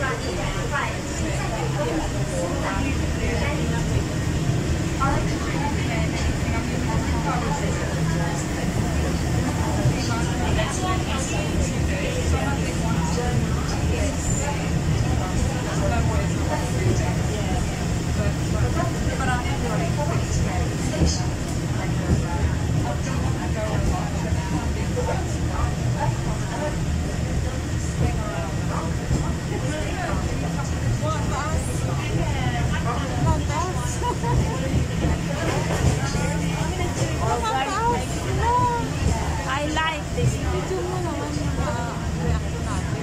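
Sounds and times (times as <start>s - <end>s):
passengers talking: 0.0s - 43.0s
tram rumbling on rails: 0.0s - 43.0s.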